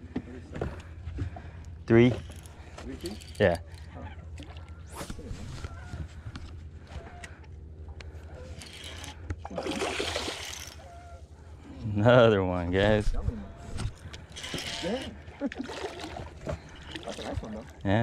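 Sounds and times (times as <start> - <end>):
fish thrashing in water: 8.6 - 10.9, 13.9 - 17.8.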